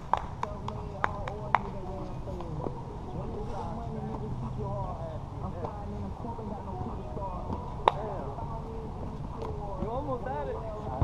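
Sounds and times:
players' voices: 0.0s - 11.0s.

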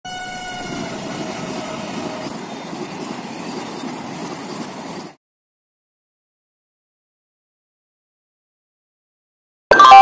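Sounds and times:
train horn: 0.0s - 2.3s
rush and rumble of passing train: 0.1s - 5.2s.

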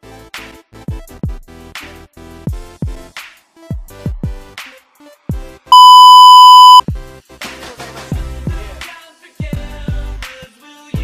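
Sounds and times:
electronic beep: 5.7s - 6.8s.

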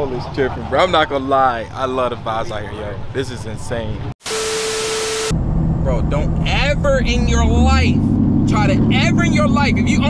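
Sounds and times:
vehicle cabin drone: 5.2s - 10.0s.

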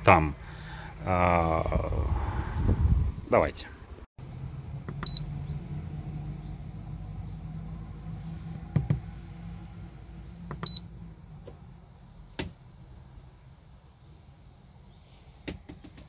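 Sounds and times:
short high key beeps: 5.0s - 5.2s.

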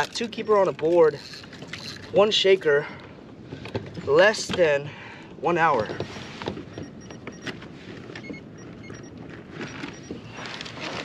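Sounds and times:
water noise: 0.0s - 4.8s
wind: 0.0s - 11.0s
handling clicks and rustles: 5.7s - 11.0s.

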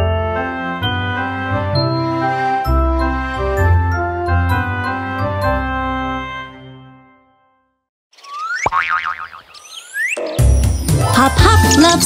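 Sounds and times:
cartoon boing with wobbling pitch: 8.6s - 9.4s.

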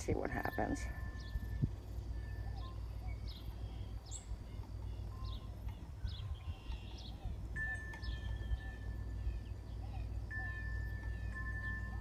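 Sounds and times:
small birds chirping: 0.0s - 12.0s
steady low rumble: 0.0s - 12.0s.

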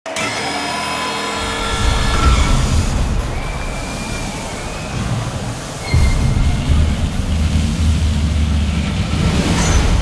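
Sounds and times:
deep rumble: 1.4s - 10.0s.

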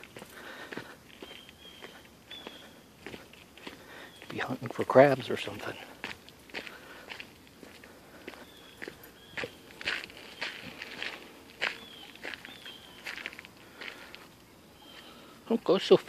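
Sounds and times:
footsteps on gravel: 0.0s - 15.3s.

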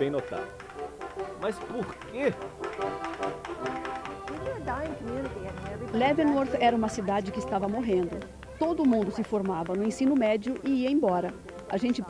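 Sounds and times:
brass-like background music: 0.0s - 12.0s
quick tapping beat: 0.0s - 12.0s.

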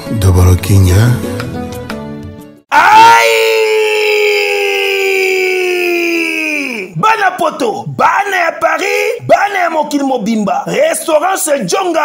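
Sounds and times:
high howling cry: 2.7s - 6.9s.

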